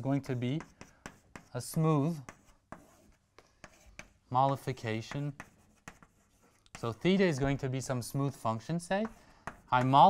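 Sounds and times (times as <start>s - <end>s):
chalk tapping and scraping on blackboard: 0.0s - 10.0s.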